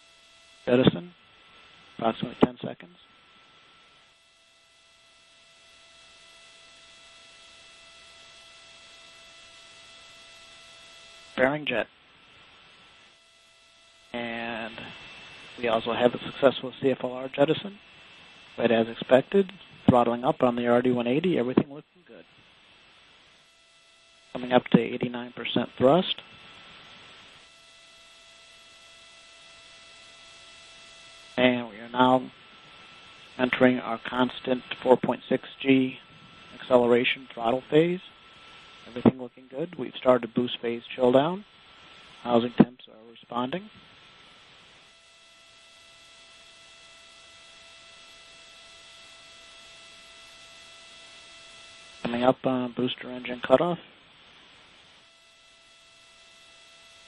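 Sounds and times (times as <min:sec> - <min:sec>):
faint hiss: 0:00.0 - 0:04.2, 0:14.0 - 0:23.6, 0:24.2 - 0:45.5, 0:47.4 - 0:55.2
thin steady hum tones: 0:00.0 - 0:57.0
person speaking: 0:02.0 - 0:02.9, 0:11.4 - 0:11.9, 0:14.2 - 0:15.0, 0:15.6 - 0:17.8, 0:18.6 - 0:22.2, 0:24.4 - 0:26.2, 0:31.4 - 0:32.3, 0:36.6 - 0:38.1, 0:38.9 - 0:41.4, 0:42.2 - 0:43.7, 0:52.0 - 0:53.9.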